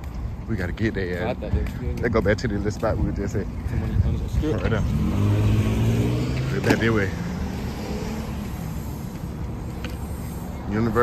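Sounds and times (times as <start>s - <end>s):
street traffic noise: 0.0s - 11.0s
vehicle engine rumble: 0.0s - 11.0s.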